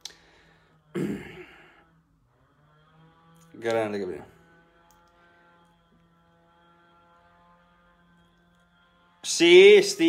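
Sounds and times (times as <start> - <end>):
man sighing: 0.9 - 1.8.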